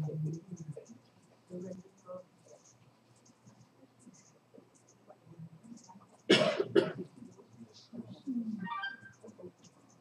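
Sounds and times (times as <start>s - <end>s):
person coughing: 6.3s - 7.0s.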